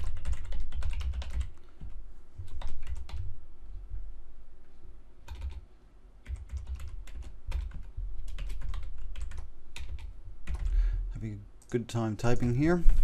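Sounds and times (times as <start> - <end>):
computer keyboard typing: 0.0 - 3.3, 5.2 - 5.6, 6.2 - 10.8.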